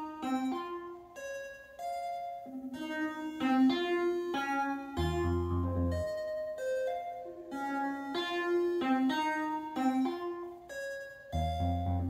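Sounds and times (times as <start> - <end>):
synthesizer melody: 5.0 - 8.5, 11.4 - 12.0.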